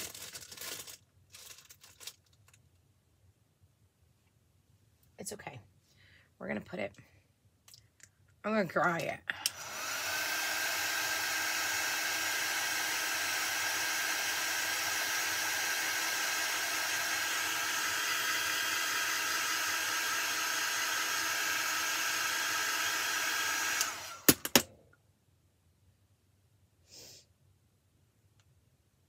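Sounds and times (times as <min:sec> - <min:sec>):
heat tool blowing: 0:09.4 - 0:24.4.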